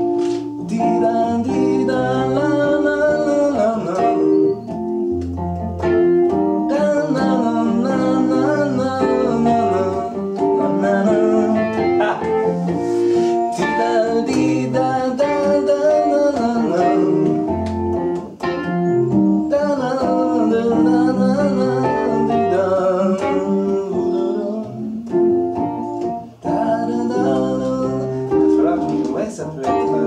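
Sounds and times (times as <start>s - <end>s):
person singing: 0.0s - 4.9s, 6.3s - 30.0s
keyboard playing piano sound: 0.0s - 30.0s.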